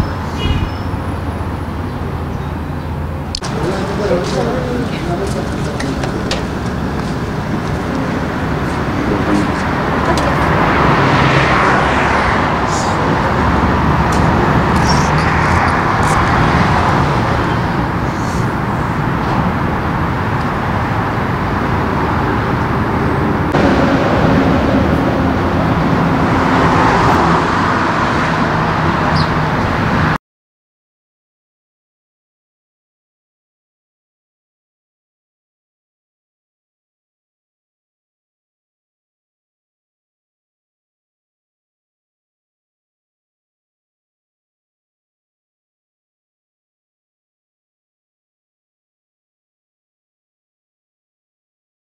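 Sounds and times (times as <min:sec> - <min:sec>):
road traffic noise: 0:00.0 - 0:30.2.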